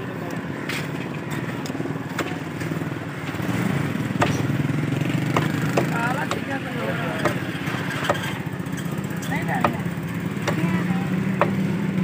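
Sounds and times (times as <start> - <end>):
cleaver chopping on wooden block: 4.1 - 4.5, 5.2 - 6.5, 7.2 - 7.4, 8.0 - 8.3, 9.6 - 11.6.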